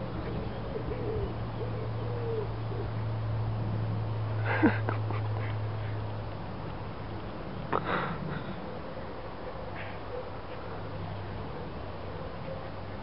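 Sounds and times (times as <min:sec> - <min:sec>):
bird cooing: 0:00.0 - 0:03.1
steady low hum: 0:00.0 - 0:13.0
person laughing: 0:04.4 - 0:05.7.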